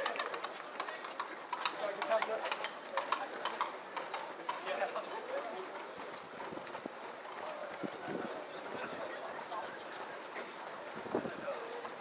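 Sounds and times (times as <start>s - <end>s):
runners' footsteps on wet road: 0.0s - 12.0s.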